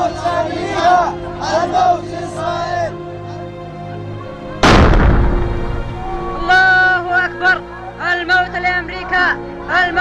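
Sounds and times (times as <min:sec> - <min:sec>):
background music: 0:00.0 - 0:10.0
explosion blast with rumble: 0:04.6 - 0:06.3.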